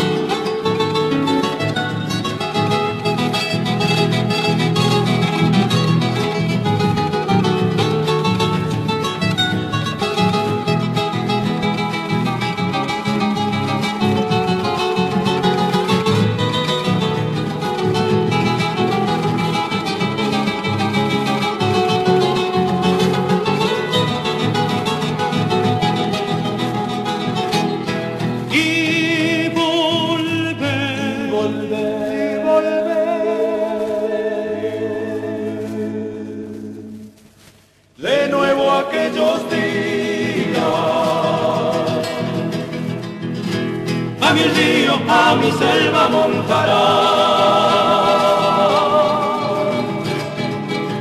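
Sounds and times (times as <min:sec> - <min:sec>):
acoustic guitars folk music: 0:00.0 - 0:51.0
high voice singing with vibrato: 0:28.4 - 0:37.0, 0:38.0 - 0:42.9, 0:44.2 - 0:50.7.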